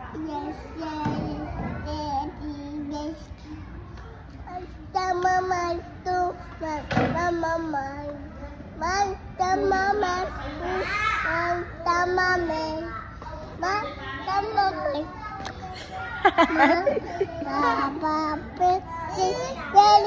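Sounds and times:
children talking: 0.0 - 20.0.

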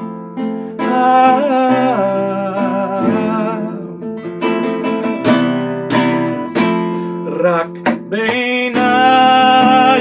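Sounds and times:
classical guitar strummed: 0.0 - 10.0.

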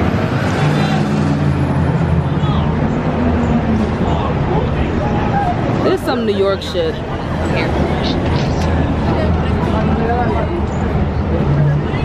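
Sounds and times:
passers-by talking: 0.0 - 12.0
street noise: 0.0 - 12.0.

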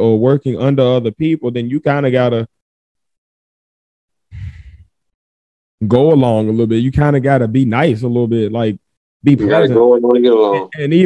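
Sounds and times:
speech: 0.0 - 2.5, 5.8 - 11.0.

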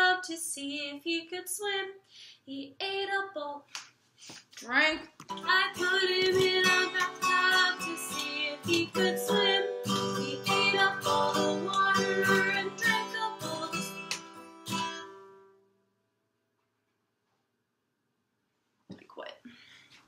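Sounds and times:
woman singing: 0.0 - 3.7, 4.6 - 14.1
acoustic guitar strumming: 5.3 - 15.7.

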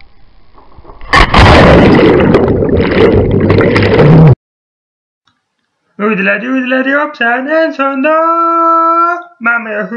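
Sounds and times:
churning water on microphone: 1.1 - 4.4
loud splash: 1.1 - 4.4.

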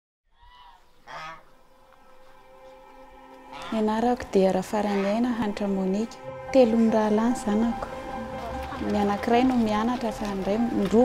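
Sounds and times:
chicken calling: 0.4 - 4.0, 4.8 - 5.3.

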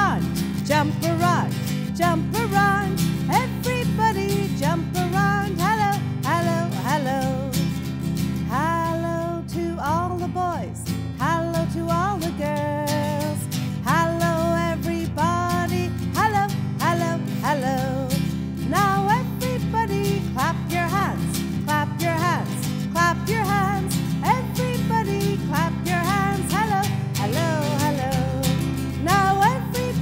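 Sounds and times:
acoustic guitar strumming: 0.0 - 30.0
woman singing: 0.0 - 30.0.

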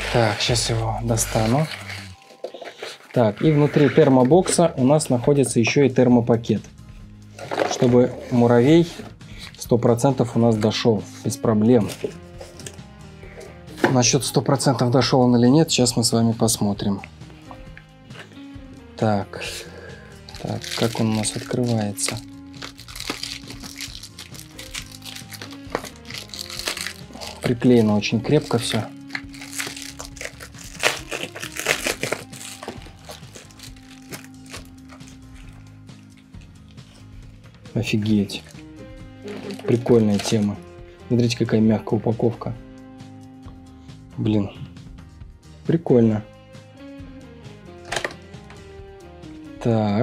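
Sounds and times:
quiet background music: 0.0 - 50.0
foil pouch crinkling: 20.2 - 36.2
packaging taps and rustles: 20.3 - 36.2, 39.3 - 40.5.

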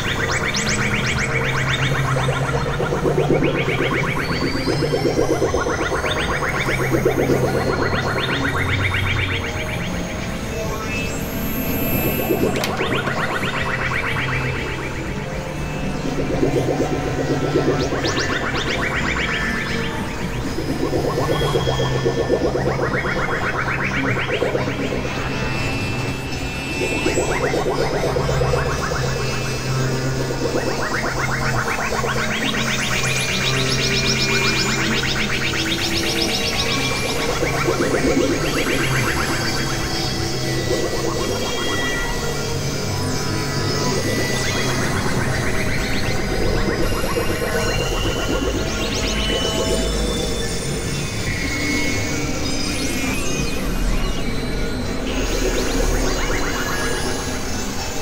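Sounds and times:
experimental electronic music: 0.0 - 58.0
low synth drone: 0.0 - 58.0.

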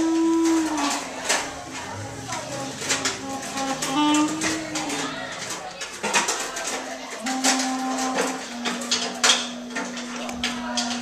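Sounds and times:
held low note: 0.0 - 5.1, 7.2 - 11.0
scattered clicks and taps: 0.1 - 11.0.

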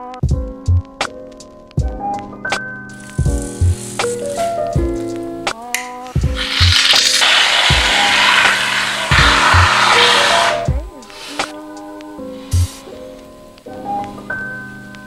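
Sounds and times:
background music with beat: 0.0 - 15.0
aerosol can spraying foam: 2.9 - 5.2, 6.1 - 13.2.

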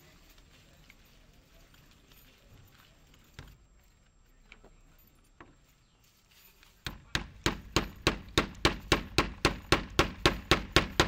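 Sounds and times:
hammer striking nail: 6.9 - 11.0.

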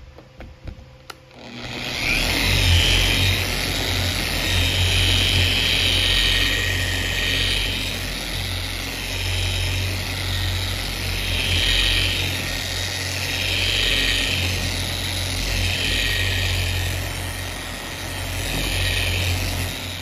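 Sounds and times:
polisher whining and humming: 0.0 - 20.0.

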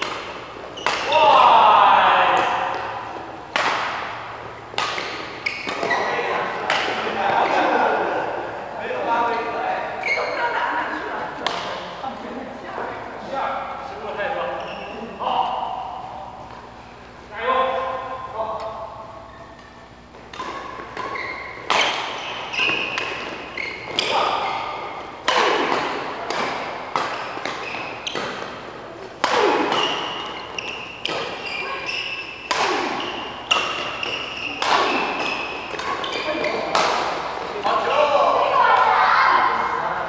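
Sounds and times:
rackets hitting shuttlecock: 0.0 - 8.5, 11.3 - 12.0, 15.7 - 38.9
voices: 0.0 - 40.0.

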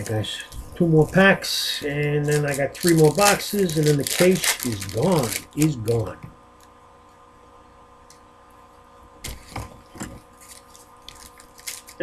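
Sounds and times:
faint steady hum: 0.0 - 12.0
foil pack crinkling: 1.0 - 6.1, 10.3 - 12.0.

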